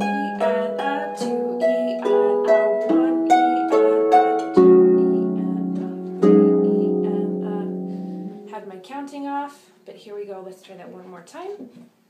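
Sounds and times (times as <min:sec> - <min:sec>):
harp plucked notes: 0:00.0 - 0:08.8.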